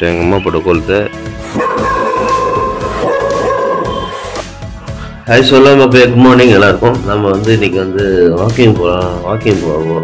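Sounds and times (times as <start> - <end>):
background music: 0.0 - 10.0
dog whining: 1.5 - 4.4.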